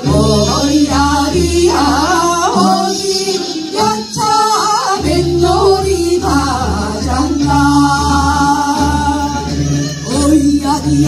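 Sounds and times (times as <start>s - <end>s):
women singing into microphones: 0.0s - 11.0s.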